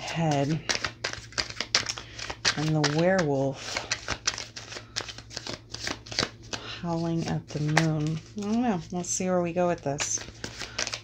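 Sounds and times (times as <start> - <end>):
cards being shuffled: 0.0 - 8.9, 9.9 - 11.0.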